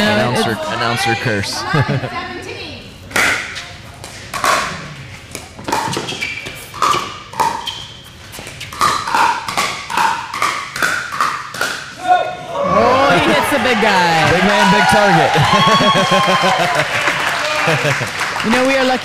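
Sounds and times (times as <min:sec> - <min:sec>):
ball bouncing on court: 0:05.6 - 0:11.8.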